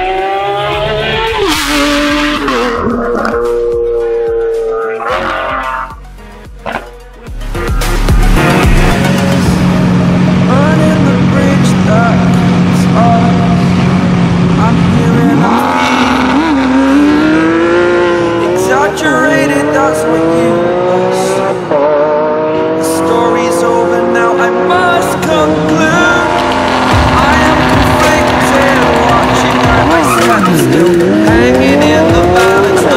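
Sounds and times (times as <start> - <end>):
sports car engine revving and accelerating: 0.0 - 5.9, 9.0 - 32.9.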